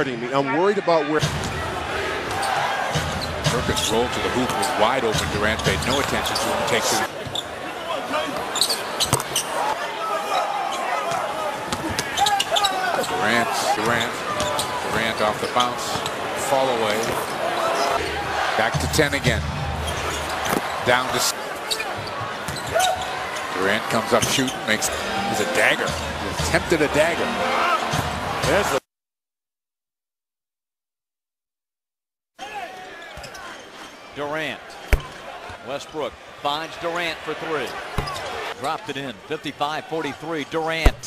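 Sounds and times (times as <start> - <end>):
arena crowd noise: 0.0 - 28.9, 32.4 - 41.0
basketball bouncing on court: 34.9 - 35.2, 38.0 - 38.3.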